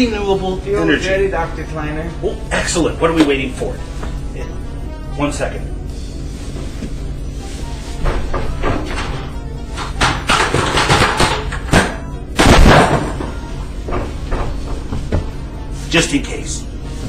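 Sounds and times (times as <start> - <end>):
objects banging and crashing: 7.9 - 15.4.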